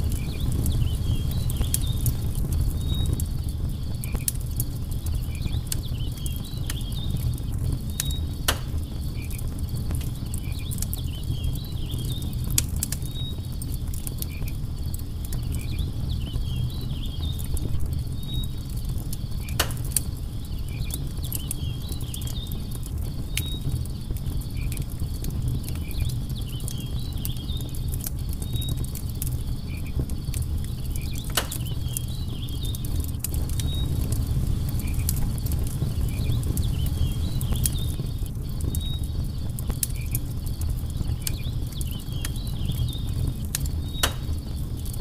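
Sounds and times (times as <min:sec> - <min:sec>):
campfire crackling: 0:00.0 - 0:45.0
fire pops: 0:00.0 - 0:45.0
low rumble of flames: 0:00.0 - 0:45.0
insects chirping: 0:00.1 - 0:45.0.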